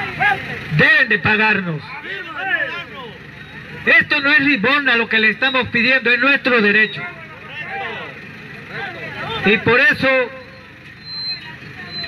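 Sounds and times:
outdoor background noise: 0:00.0 - 0:12.0
man speaking into a microphone: 0:00.1 - 0:03.1, 0:03.8 - 0:07.8, 0:09.2 - 0:10.4.

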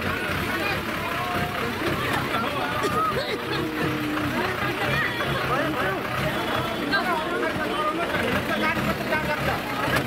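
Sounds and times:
people talking: 0:00.0 - 0:10.0
vehicle engines rumbling: 0:00.0 - 0:10.0.

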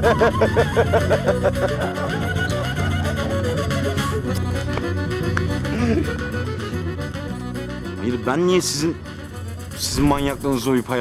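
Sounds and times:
laughter in quick bursts: 0:00.0 - 0:02.3
background music: 0:00.0 - 0:11.0.

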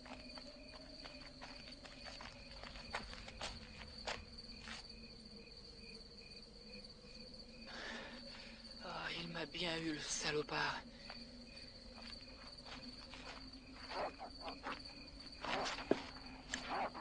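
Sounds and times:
crickets chirping: 0:00.0 - 0:17.0.

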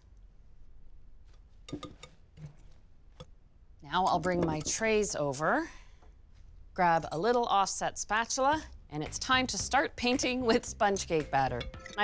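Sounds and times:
whisk clicking against glass bowl: 0:11.4 - 0:12.0.

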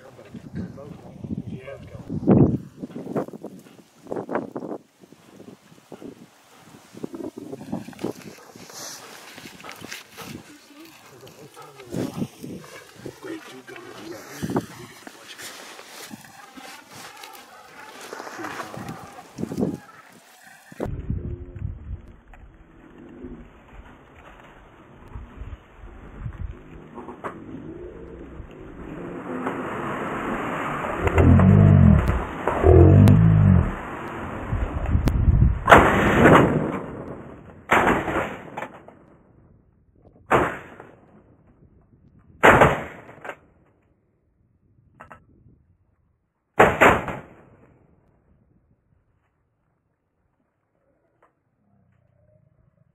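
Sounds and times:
wind on microphone: 0:00.3 - 0:10.6, 0:11.8 - 0:13.2, 0:14.1 - 0:15.0, 0:20.7 - 0:22.6, 0:25.0 - 0:29.1, 0:30.3 - 0:35.7
shotgun shots: 0:42.4 - 0:43.2, 0:46.6 - 0:47.5.

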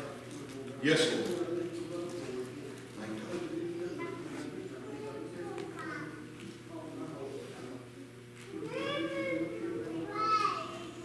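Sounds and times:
faint murmuring voices: 0:00.0 - 0:11.0
child's high-pitched vocalisation: 0:08.6 - 0:10.9.

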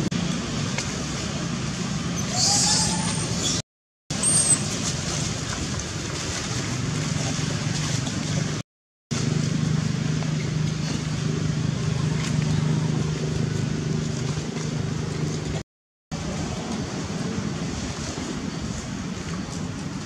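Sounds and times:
low engine hum: 0:00.0 - 0:20.0
outdoor noise: 0:00.0 - 0:20.0.

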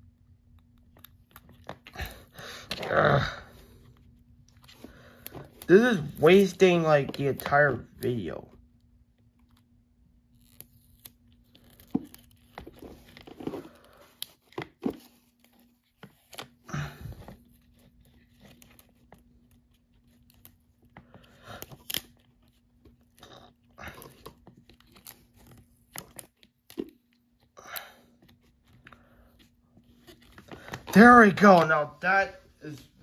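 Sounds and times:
sticker rustling and crinkling: 0:10.2 - 0:27.5.

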